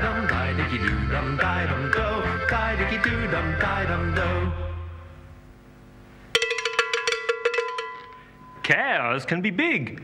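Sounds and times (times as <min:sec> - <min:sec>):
song ending: 0:00.0 - 0:05.1
cowbell ringing: 0:06.4 - 0:08.7.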